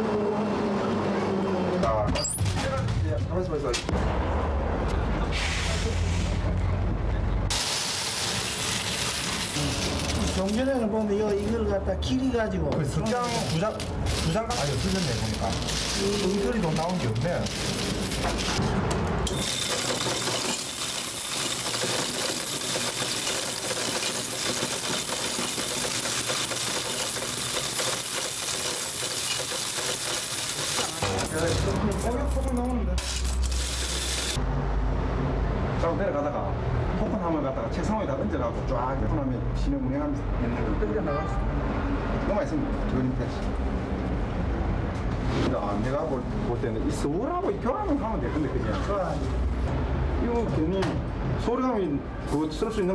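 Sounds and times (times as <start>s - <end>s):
coins jingling as they pour: 7.5s - 10.9s, 13.0s - 18.6s, 19.3s - 34.4s.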